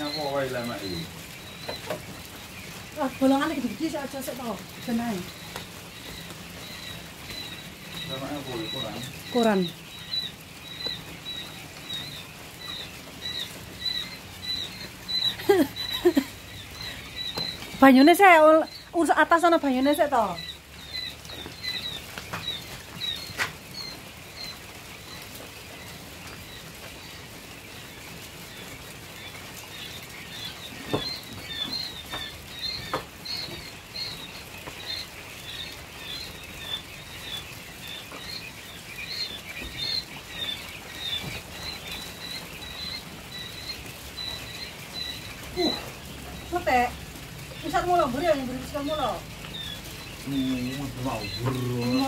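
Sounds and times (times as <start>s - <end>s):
quail chicks peeping: 0.0s - 52.0s.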